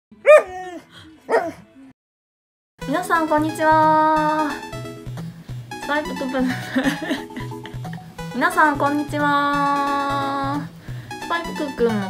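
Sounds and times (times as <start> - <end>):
dog barking: 0.2 - 1.6.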